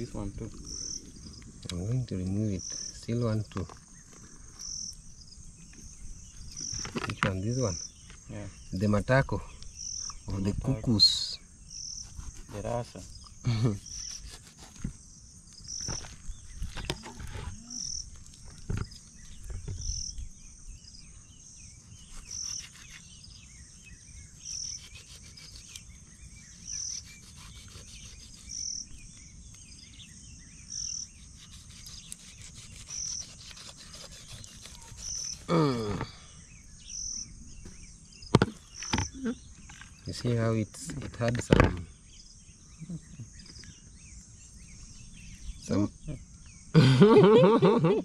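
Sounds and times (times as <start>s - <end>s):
knife cutting raw chicken: 22.0s - 23.0s, 27.0s - 28.5s, 31.4s - 35.5s.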